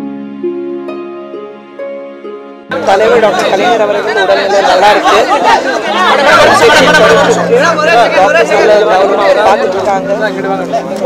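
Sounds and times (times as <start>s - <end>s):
overlapping chatter of voices: 2.7s - 11.0s.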